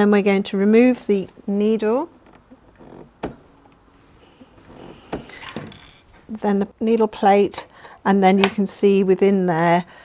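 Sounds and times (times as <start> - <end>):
faint handling noise: 2.1 - 6.4.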